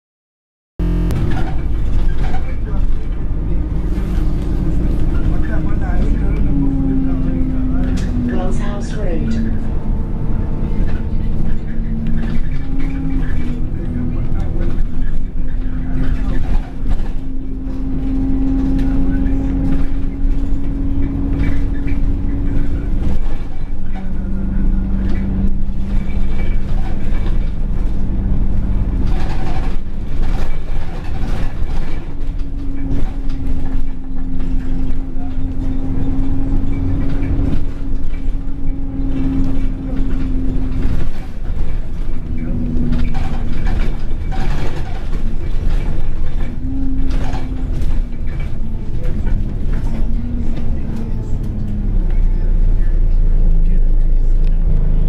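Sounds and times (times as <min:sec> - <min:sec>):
bus engine whine: 0:00.8 - 0:55.0
low rumble and road noise: 0:00.8 - 0:55.0.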